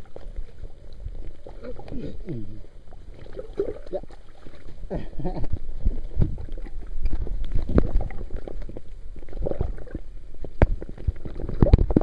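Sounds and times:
underwater gurgling and sloshing: 0.0s - 12.0s.

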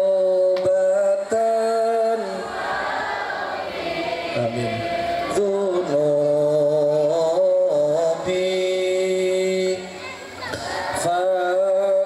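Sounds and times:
choir singing a religious chant: 2.1s - 9.1s, 10.5s - 12.0s.

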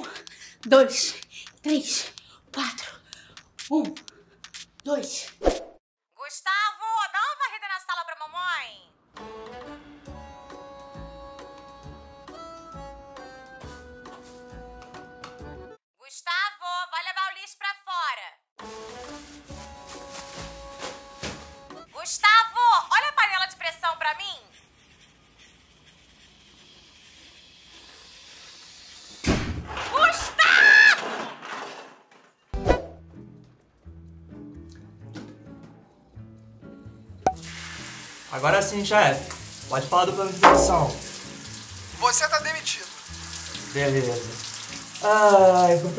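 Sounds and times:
plucked melody over bass: 40.4s - 41.1s.

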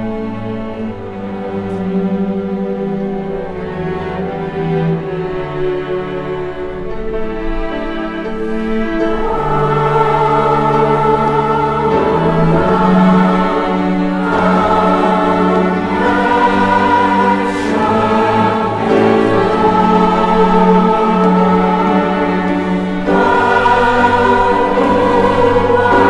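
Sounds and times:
mixed choir singing: 0.0s - 26.0s
string chamber orchestra: 0.0s - 26.0s.

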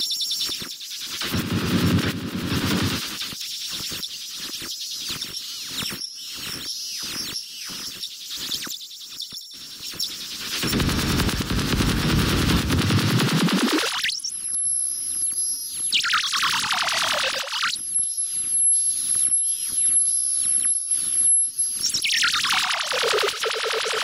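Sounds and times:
fast stuttering glitches: 1.2s - 3.2s, 10.4s - 14.2s, 16.4s - 17.6s, 22.1s - 24.0s
harsh electronic noise music: 1.3s - 3.0s, 10.6s - 14.1s.

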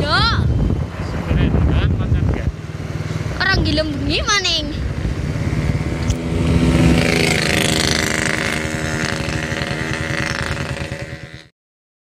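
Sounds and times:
rushing wind: 0.0s - 11.4s
road noise: 0.0s - 11.5s
vehicle engine running: 0.0s - 11.5s.

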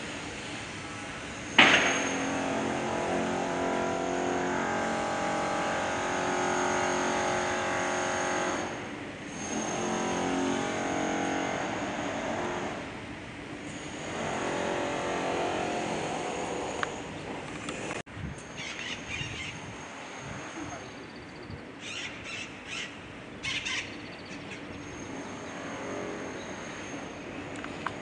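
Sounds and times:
faint high whine: 17.8s - 21.7s.

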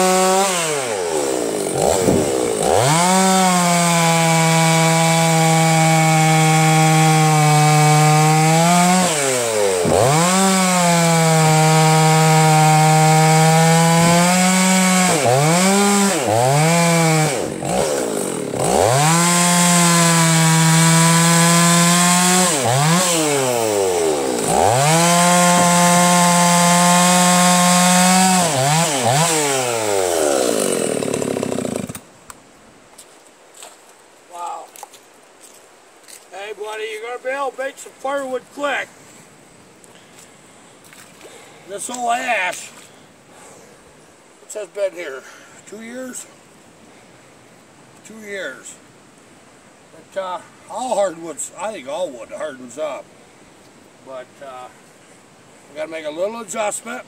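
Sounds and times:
chainsaw cutting log: 0.0s - 32.1s.

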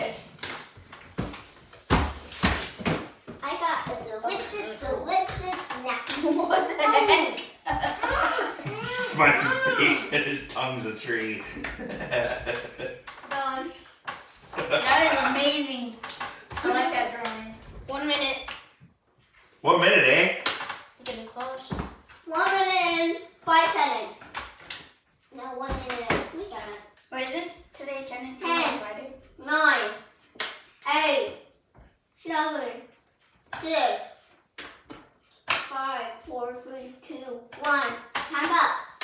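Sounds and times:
children talking and calling out: 3.4s - 10.2s.

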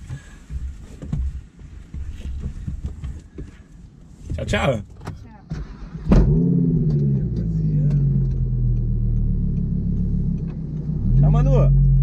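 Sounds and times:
car engine starting and idling: 4.4s - 12.0s.

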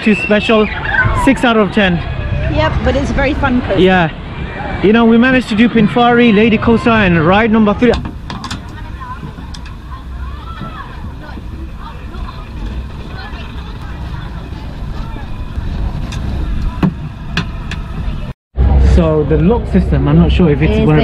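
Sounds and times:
distant voices: 0.0s - 20.4s
low steady rumble: 0.8s - 21.0s.

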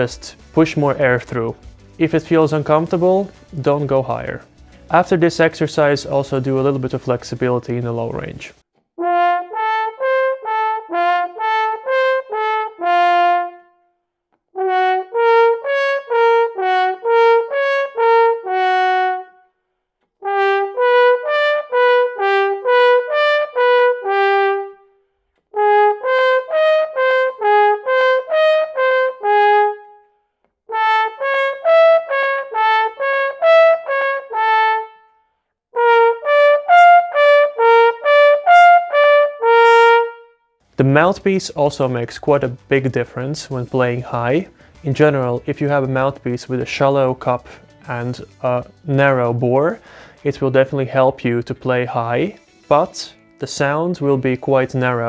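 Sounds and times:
french horn playing arpeggios: 9.0s - 13.8s, 14.6s - 19.4s, 20.2s - 41.2s
player breathing: 44.5s - 44.8s, 49.8s - 50.2s.

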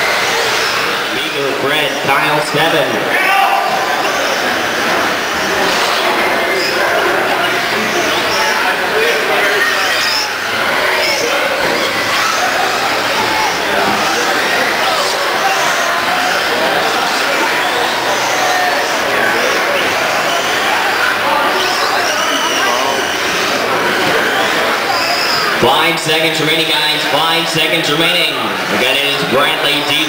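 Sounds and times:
hubbub of voices in a hall: 0.0s - 30.0s.

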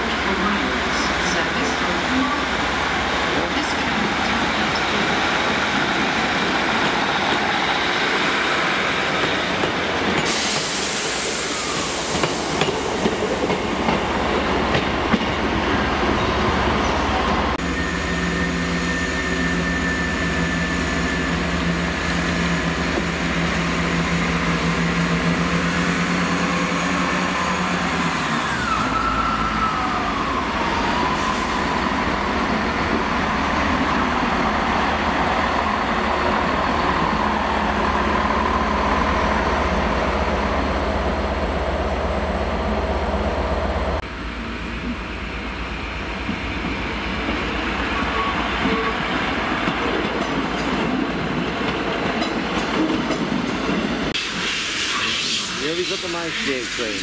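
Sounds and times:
train engine and rail drone: 0.0s - 57.0s.

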